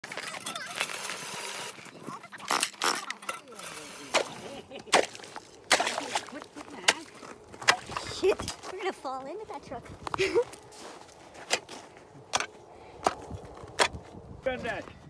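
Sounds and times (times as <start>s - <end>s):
ice chisel striking ice: 2.5s - 8.0s.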